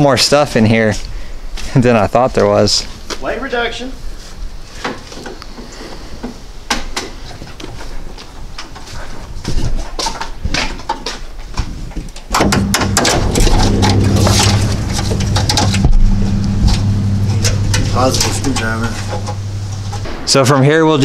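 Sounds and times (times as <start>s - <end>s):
steady low hum: 12.3s - 21.0s.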